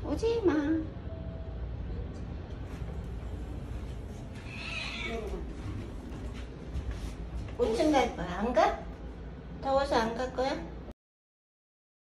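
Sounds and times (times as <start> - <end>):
steady low hum: 0.0 - 10.9
cat meowing: 4.4 - 5.4.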